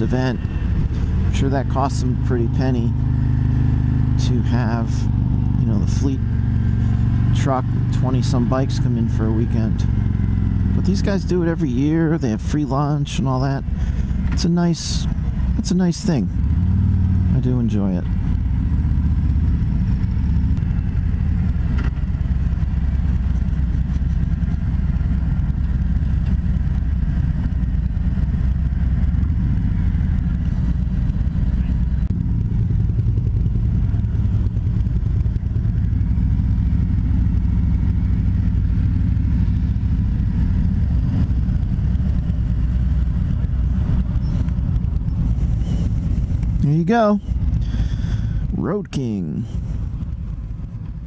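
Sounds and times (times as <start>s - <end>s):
motorcycle engine rumbling: 0.0s - 51.0s.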